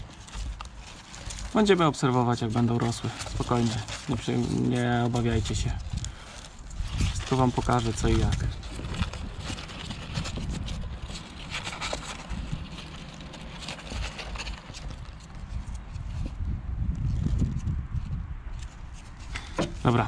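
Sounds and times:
rabbits scratching and rustling: 0.0s - 16.4s, 18.5s - 20.0s
wind rumbling on microphone: 2.4s - 20.0s.

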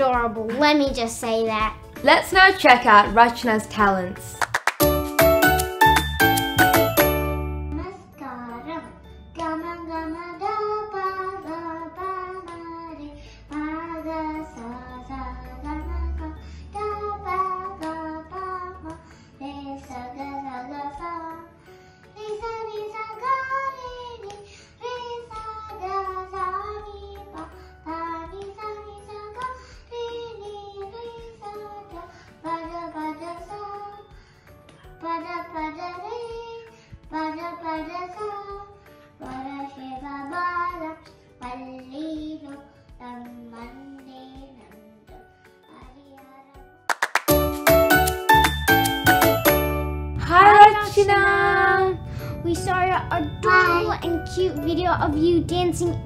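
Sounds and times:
girl singing into a microphone: 7.8s - 21.5s, 22.2s - 34.0s, 35.0s - 45.0s.

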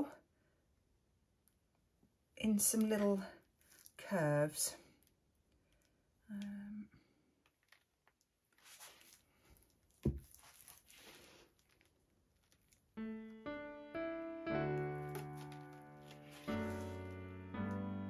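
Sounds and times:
rustling and handling noise: 2.7s - 4.2s, 7.4s - 13.0s, 14.8s - 17.2s
piano music: 13.0s - 18.0s.

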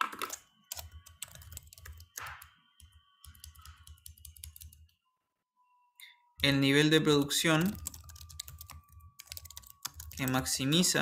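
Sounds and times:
computer keyboard typing: 0.0s - 4.9s, 7.1s - 10.9s.

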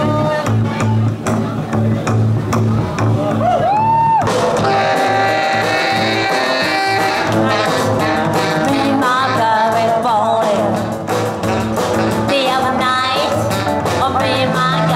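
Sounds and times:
saxophone: 0.0s - 1.0s, 4.5s - 14.9s
rock and roll band playing: 0.0s - 14.9s
woman singing: 8.6s - 10.9s, 12.2s - 14.9s.

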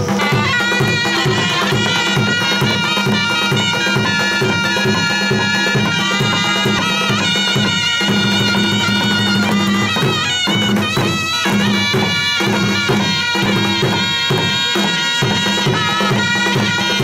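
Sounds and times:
fast drum beat: 0.0s - 17.0s
reed pipes playing melody: 0.0s - 17.0s.

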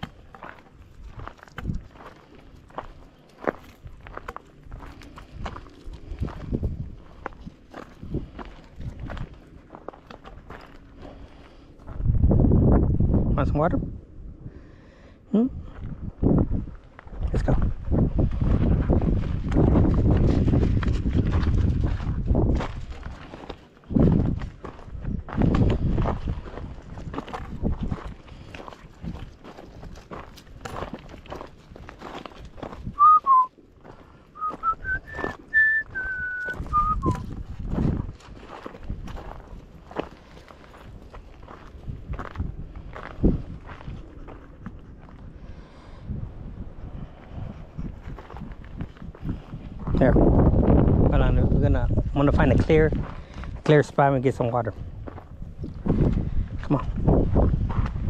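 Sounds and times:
footsteps on gravel: 0.0s - 12.3s, 15.7s - 45.9s, 47.1s - 58.0s
wind rumbling on microphone: 0.0s - 58.0s
person whistling: 33.0s - 33.5s, 34.4s - 37.2s.

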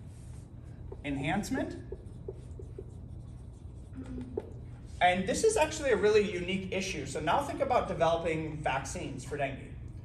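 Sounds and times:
low steady room hum: 0.0s - 10.0s
marker scratching on whiteboard: 0.1s - 4.6s.

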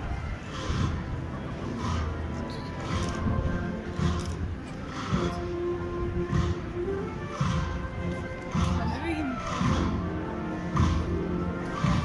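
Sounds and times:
band playing slow march: 0.0s - 12.0s
crowd voices: 0.0s - 12.0s.

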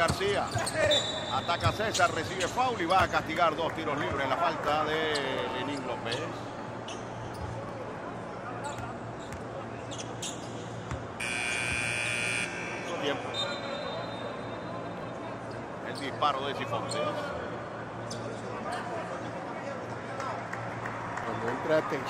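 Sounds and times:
arena buzzer: 11.2s - 14.4s.

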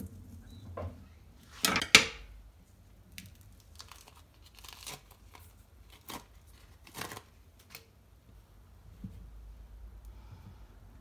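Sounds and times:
salami casing tearing: 3.2s - 7.8s.

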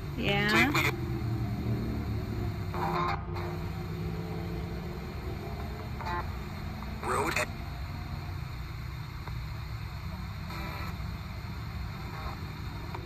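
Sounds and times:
radio hiss and static: 0.0s - 13.0s
steady low rumble: 0.0s - 13.0s
snatches of broadcast sound: 5.0s - 13.0s.

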